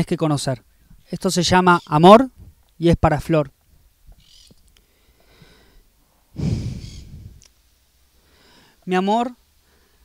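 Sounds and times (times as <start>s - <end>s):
man breathing into microphone: 4.8s - 7.4s, 8.2s - 8.8s
heavy exhale: 4.9s - 7.4s.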